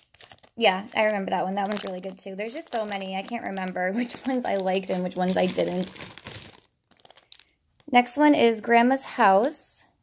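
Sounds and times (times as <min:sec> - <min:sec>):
plastic bag crinkling: 0:00.0 - 0:08.0.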